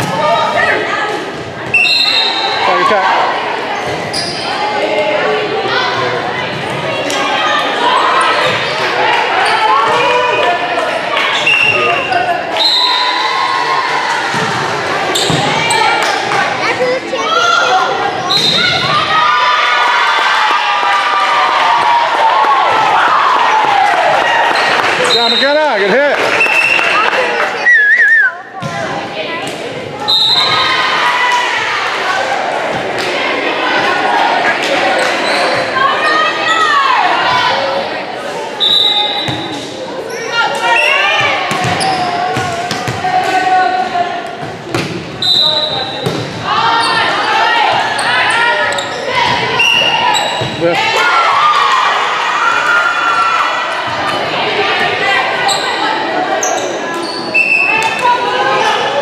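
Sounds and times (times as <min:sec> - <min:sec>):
people talking and calling out: 0:00.0 - 0:59.0
shoes squeaking on floor: 0:03.8 - 0:04.6, 0:11.3 - 0:13.0, 0:38.6 - 0:42.3, 0:46.8 - 0:50.7, 0:56.4 - 0:58.0.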